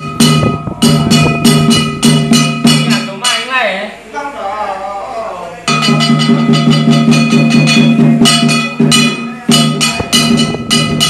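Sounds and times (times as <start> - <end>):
struck metal gong and cymbals: 0.0 - 3.5, 5.7 - 11.0.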